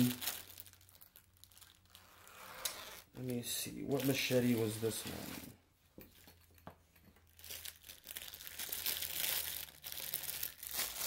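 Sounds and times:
plastic wrap rustling: 0.0 - 11.0.

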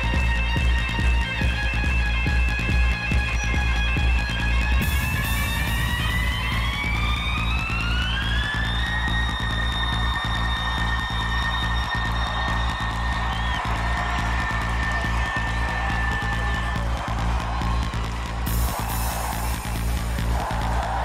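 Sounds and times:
electronic dance music heavy bass: 0.0 - 21.0.

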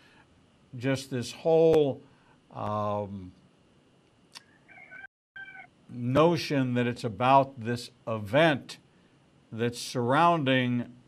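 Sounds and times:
rooster crowing faintly: 4.4 - 5.7.

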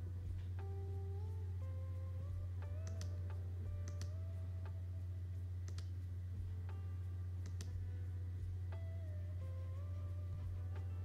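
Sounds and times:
steady low hum: 0.0 - 11.0
keyboard key clicks: 2.7 - 4.2.

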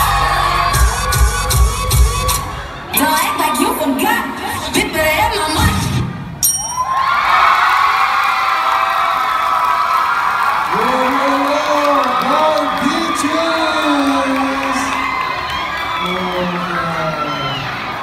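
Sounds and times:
audience cheering and whooping: 0.0 - 3.2, 6.8 - 18.0.

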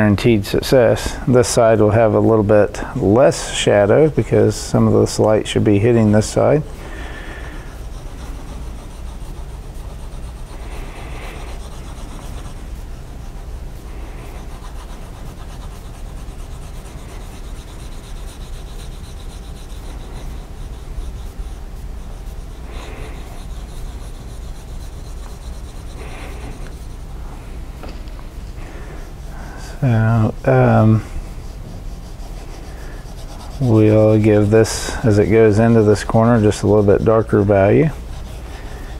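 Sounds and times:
pencil shading on paper: 3.7 - 38.9.

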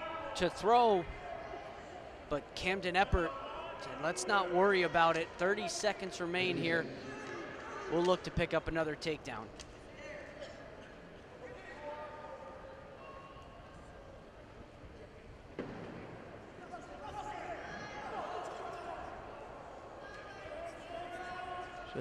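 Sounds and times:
crowd voices and shouts: 0.0 - 14.2, 15.0 - 22.0.

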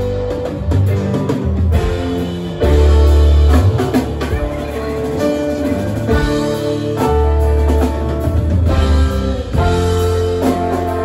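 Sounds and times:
drum kit: 0.0 - 11.0
electric bass: 0.0 - 11.0
electric guitar: 0.0 - 11.0
keyboards: 0.0 - 11.0.

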